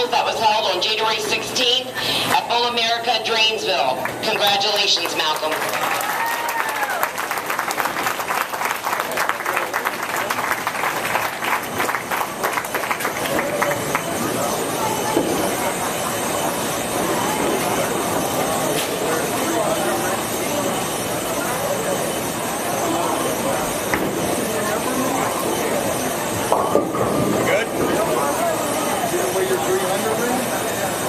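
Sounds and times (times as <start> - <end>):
distant crowd chatter: 0.0 - 31.0.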